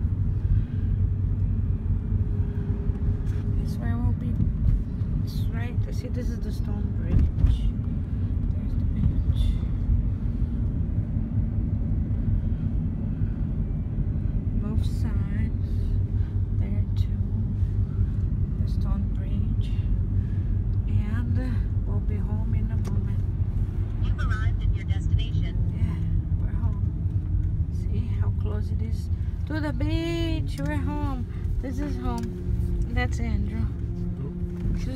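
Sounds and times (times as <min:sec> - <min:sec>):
car tyre and engine rumble: 0:00.0 - 0:34.9.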